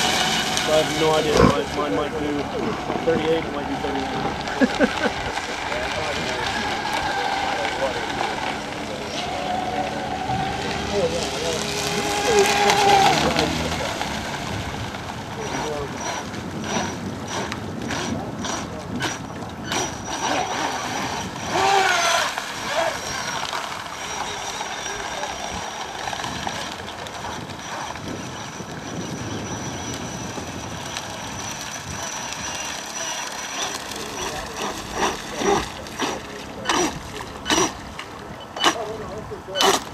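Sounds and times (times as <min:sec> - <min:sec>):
water rushing: 0:00.0 - 0:28.9, 0:29.9 - 0:39.9
high motor whine: 0:00.0 - 0:39.9.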